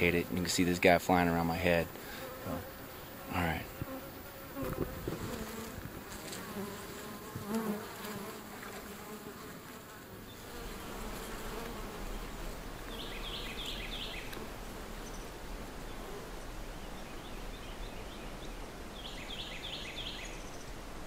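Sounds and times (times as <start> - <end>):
bees buzzing: 0.0 - 20.0
bird-like chirps: 12.9 - 14.3.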